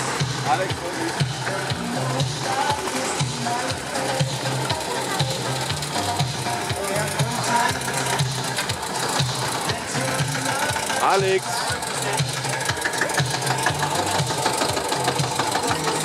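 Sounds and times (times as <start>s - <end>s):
background music: 0.0s - 16.0s
tractor diesel engine chugging: 0.0s - 16.0s
background voices: 0.4s - 16.0s.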